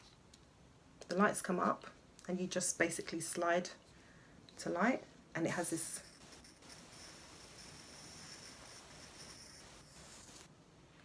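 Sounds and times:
electric arc lighter buzzing hiss: 5.5 - 10.5.

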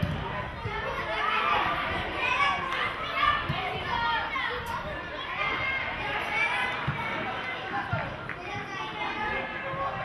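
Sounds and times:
children shouting: 0.0 - 10.0.

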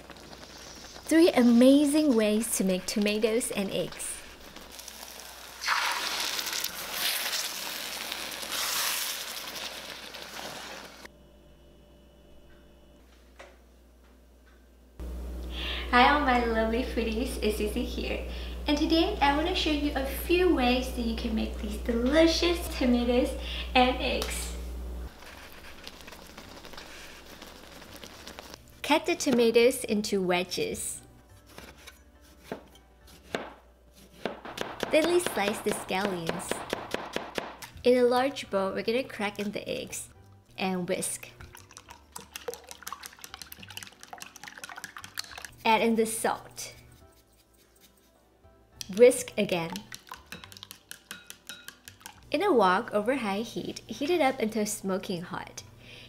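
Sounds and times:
food sizzling in a wok: 0.0 - 2.5, 3.8 - 11.1, 25.1 - 28.6
cleaver chopping on cutting board: 32.4 - 33.6, 34.2 - 37.6.

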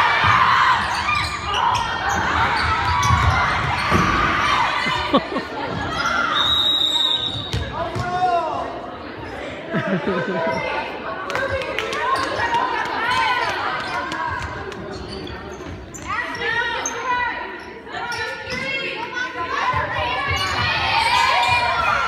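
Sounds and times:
basketball bouncing on court: 0.2 - 4.3
sneakers squeaking on floor: 0.2 - 4.4, 5.6 - 8.3, 13.4 - 18.9.

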